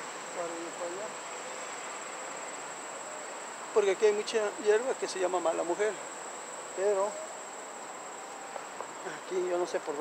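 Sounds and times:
background hiss: 0.0s - 10.0s
insects trilling: 0.0s - 10.0s.

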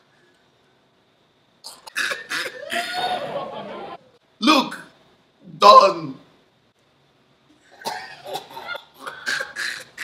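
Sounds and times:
man laughing hard: 2.6s - 4.0s.

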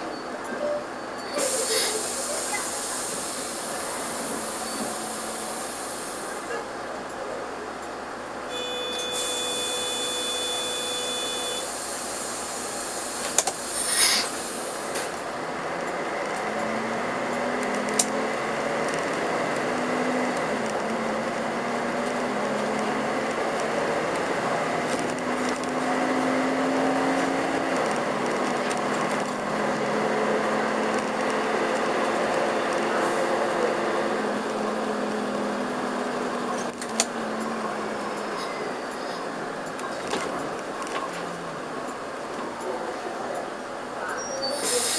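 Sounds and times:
diesel engine accelerating: 1.2s - 44.9s
hiss: 1.4s - 6.4s, 11.6s - 15.1s, 44.5s - 44.9s
burst of air: 11.8s - 15.0s.

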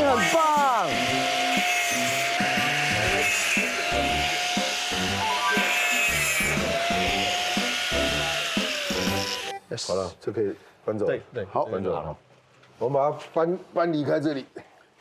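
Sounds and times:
electric saw cutting wire mesh: 0.0s - 9.6s.

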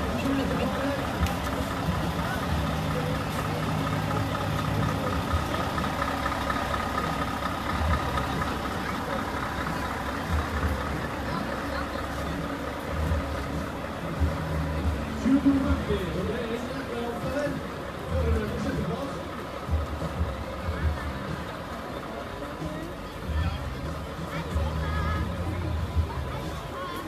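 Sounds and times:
background voices: 0.0s - 27.0s
truck engine idling: 0.0s - 27.0s.

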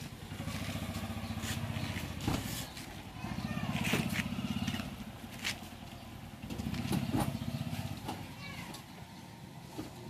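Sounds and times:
small engine running: 0.0s - 5.7s.

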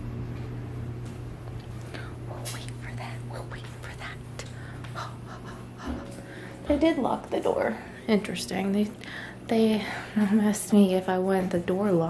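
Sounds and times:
clothes dryer humming: 0.0s - 12.0s.

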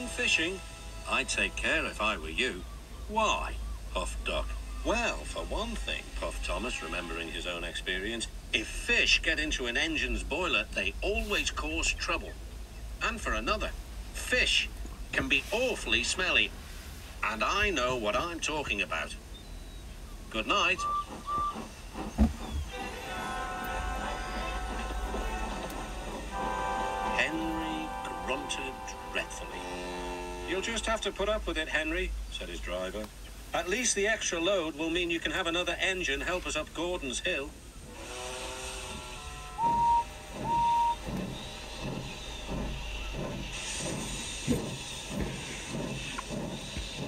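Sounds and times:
background music: 0.0s - 1.9s, 22.7s - 30.6s
steam locomotive puffing and hissing: 4.6s - 9.2s, 9.9s - 12.5s, 13.1s - 18.8s, 19.8s - 31.4s, 37.1s - 47.0s
steam whistle peeps: 20.6s - 21.8s, 22.5s - 30.9s, 37.9s - 43.2s.

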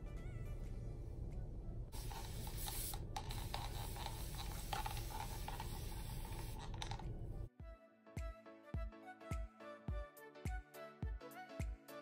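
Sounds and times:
background music with thumping beat: 7.6s - 12.0s.

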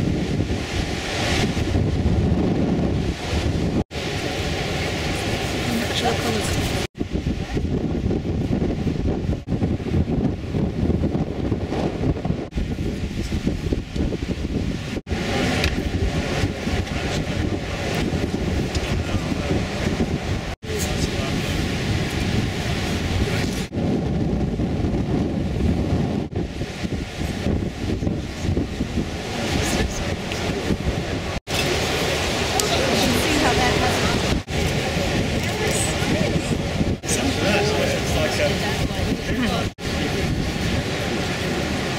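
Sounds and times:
surf: 0.0s - 41.9s
wind buffeting microphone: 0.0s - 41.9s
indistinct crowd talk: 20.6s - 21.6s, 29.2s - 41.9s.

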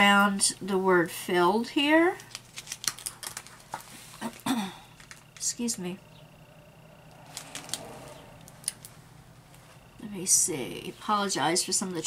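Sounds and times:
plastic-covered canvas crinkling: 2.2s - 4.4s
faint road traffic passing: 5.5s - 11.6s.

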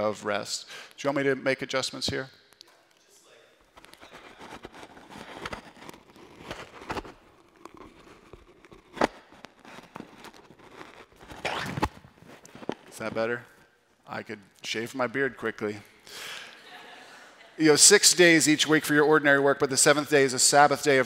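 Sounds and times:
microphone handling rustle: 3.6s - 13.6s.

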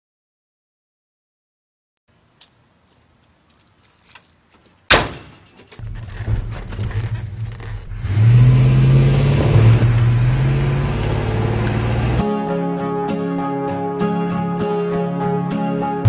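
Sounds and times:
truck door slamming: 4.9s - 8.4s
truck engine rumbling: 4.9s - 12.2s.

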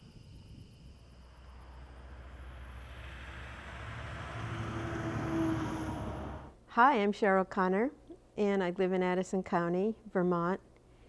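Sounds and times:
faint high insect trill: 0.0s - 4.6s
vehicle passing: 0.8s - 6.6s.

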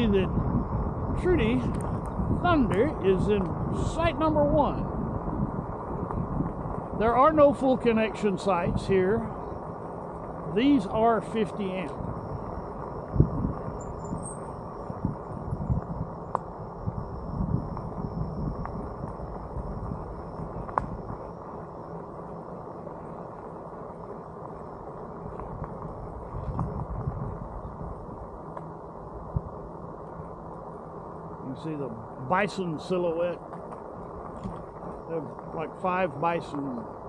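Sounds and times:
bike tyres on gravel: 0.0s - 37.0s
faint high whine: 0.0s - 37.0s.

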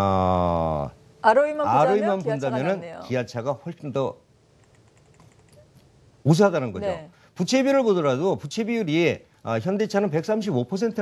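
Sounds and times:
man speaking: 0.0s - 1.0s, 1.6s - 4.2s, 6.2s - 11.0s.

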